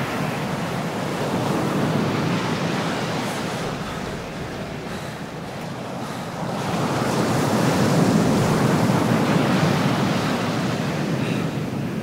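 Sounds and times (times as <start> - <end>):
ocean waves breaking: 0.0 - 12.0.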